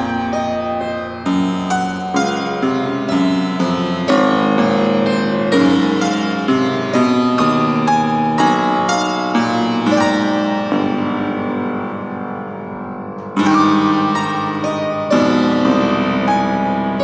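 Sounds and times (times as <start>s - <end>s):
fortepiano playing slow chords: 0.0s - 17.0s.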